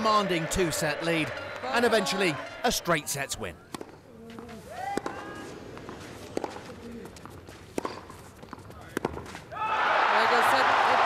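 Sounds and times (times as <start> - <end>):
racket hitting tennis ball: 3.7 - 9.4.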